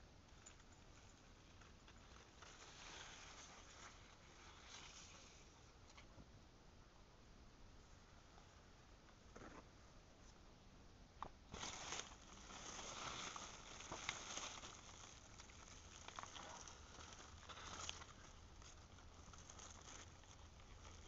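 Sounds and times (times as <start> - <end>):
leaves rustling against phone: 0.3 - 6.1, 11.5 - 21.0.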